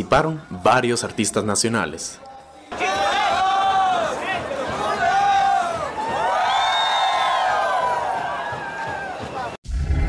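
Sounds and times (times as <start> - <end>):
crowd noise: 0.6 - 9.6.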